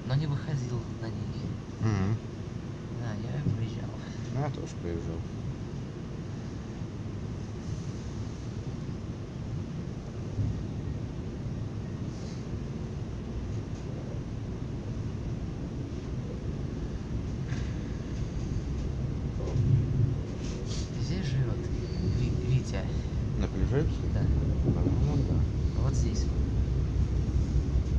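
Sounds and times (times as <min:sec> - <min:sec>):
train cabin rumble: 0:00.0 - 0:27.9.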